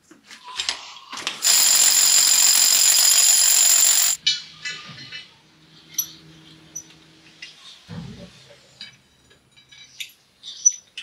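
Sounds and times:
hammer drill boring into rock: 1.4s - 4.2s.

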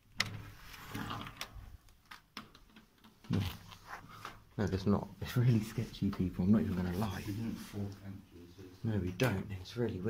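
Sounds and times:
sharp clicks and knocks: 1.2s - 3.4s
man speaking: 4.6s - 10.0s.

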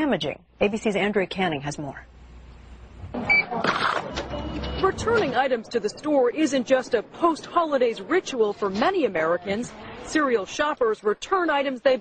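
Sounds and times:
short electronic beep: 3.2s - 5.0s
voices in the background: 3.2s - 11.8s
cash register noise: 3.4s - 5.6s.

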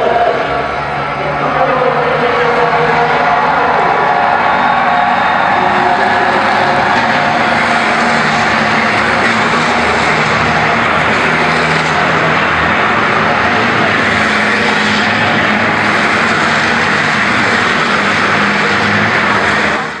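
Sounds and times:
truck engines racing: 0.0s - 20.0s.

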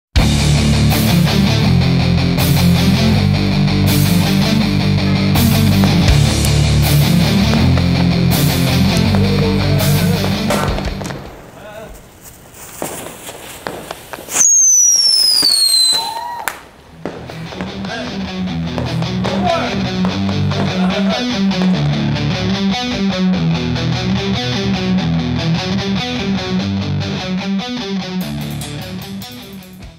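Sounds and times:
rock music with guitar: 0.2s - 11.4s, 17.1s - 29.9s
firework sparks crackling: 5.4s - 22.0s
falling firework whistle: 12.8s - 16.7s.

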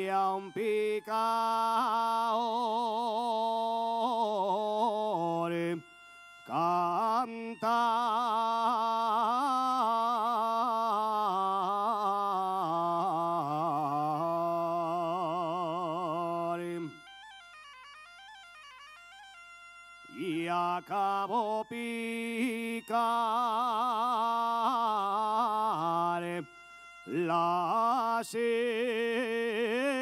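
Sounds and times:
man singing ornamented phrases: 0.0s - 17.2s, 20.1s - 30.0s
bagpipe: 0.0s - 30.0s.

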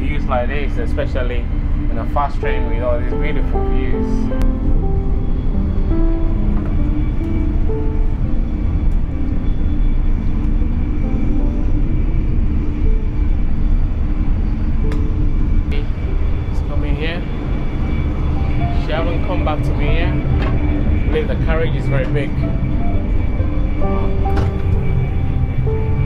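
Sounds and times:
background music: 0.0s - 26.0s
train rumbling: 0.0s - 26.0s.

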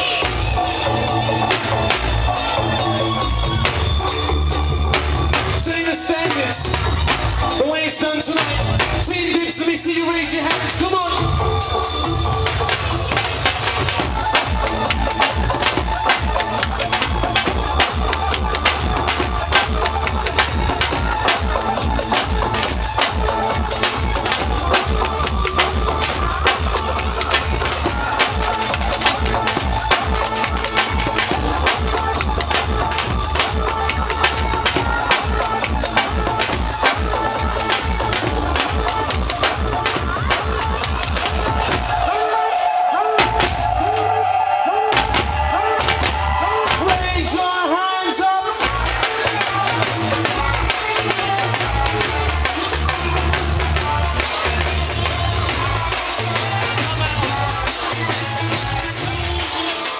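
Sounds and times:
dhol drums playing fast rhythm: 0.0s - 42.2s, 44.9s - 47.6s, 48.4s - 59.9s.

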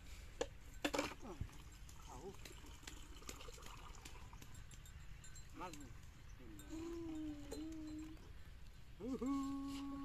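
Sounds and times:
person calling: 6.4s - 8.3s, 9.0s - 10.0s.

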